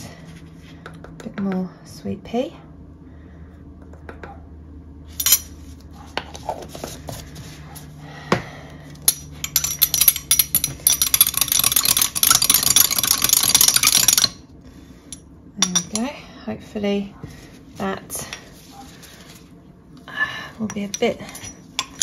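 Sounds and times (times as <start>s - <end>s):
spoon clinking in glass jar: 9.1s - 14.4s.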